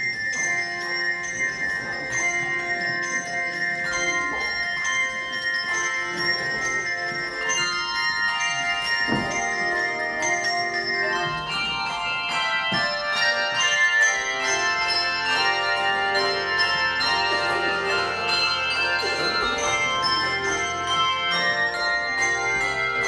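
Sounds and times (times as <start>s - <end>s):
handbell choir playing: 0.0s - 23.0s.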